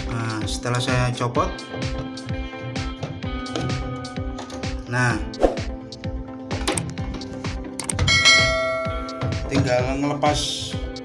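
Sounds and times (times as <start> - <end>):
background music with steady beat: 0.0 - 11.0
sharp clicks: 7.7 - 8.0.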